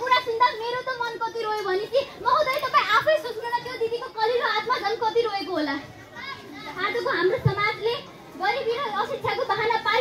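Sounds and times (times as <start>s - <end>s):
girl speaking: 0.0s - 5.3s
crowd of children chattering: 0.0s - 10.0s.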